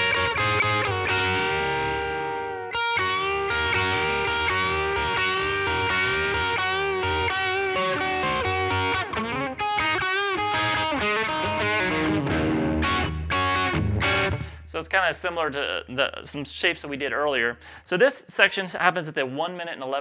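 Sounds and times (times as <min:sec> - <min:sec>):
electric guitar playing blues lead: 0:00.0 - 0:14.7.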